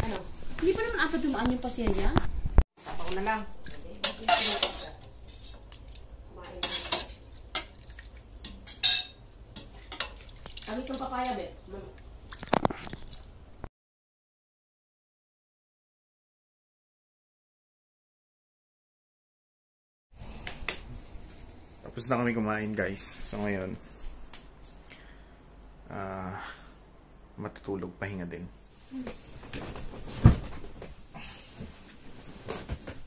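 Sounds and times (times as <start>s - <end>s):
metal ladle scraping a pot: 4.0s - 5.6s.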